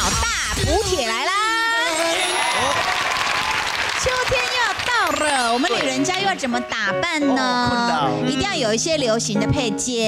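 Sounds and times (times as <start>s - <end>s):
people applauding: 1.6s - 6.4s.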